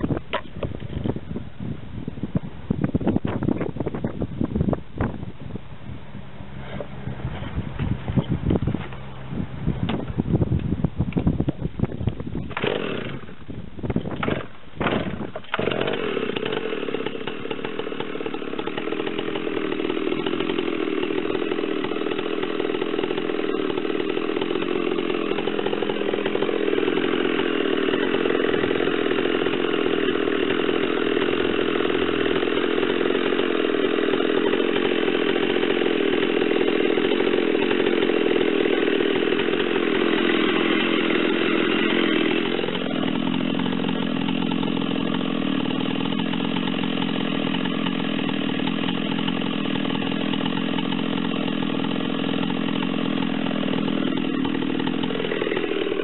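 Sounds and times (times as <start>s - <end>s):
chainsaw cutting log: 0.0s - 1.2s, 6.6s - 9.2s, 11.9s - 56.0s.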